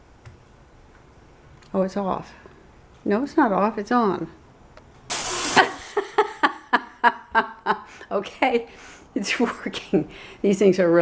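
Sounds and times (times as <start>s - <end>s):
compressed air spray hiss: 5.1s - 6.0s
woman laughing: 5.5s - 8.0s.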